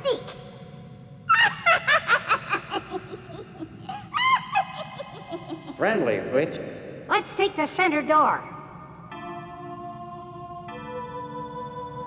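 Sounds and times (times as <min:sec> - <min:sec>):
steady low hum: 0:00.0 - 0:12.0
cartoon voice laughing: 0:01.3 - 0:05.9.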